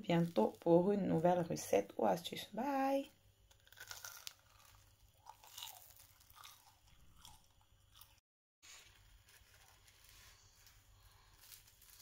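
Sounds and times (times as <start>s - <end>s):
faint crunches of fried pastry: 3.5s - 12.0s.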